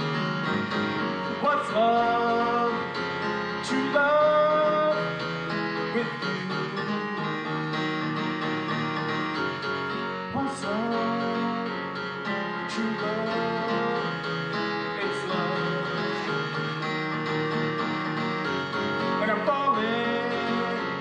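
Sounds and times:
digital piano chords: 0.0s - 21.0s
man singing: 1.3s - 7.6s, 10.3s - 16.8s, 19.1s - 21.0s.

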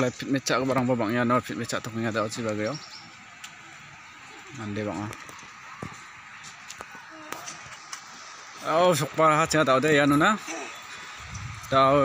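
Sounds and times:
faint open-air hiss: 0.0s - 12.0s.

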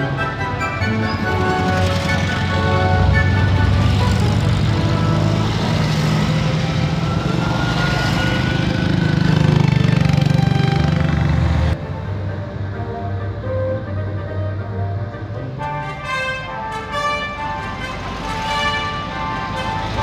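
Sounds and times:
music: 0.0s - 8.9s, 10.5s - 20.0s
car engines driving: 0.0s - 20.0s.

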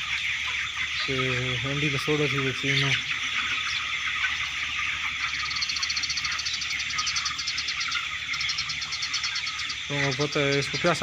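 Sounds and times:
chickens cheeping: 0.0s - 11.0s.

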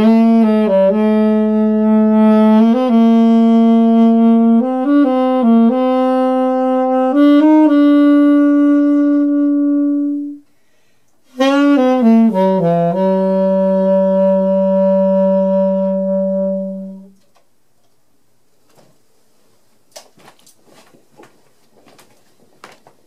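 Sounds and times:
solo saxophone jazz phrase: 0.0s - 10.6s, 11.2s - 17.2s.

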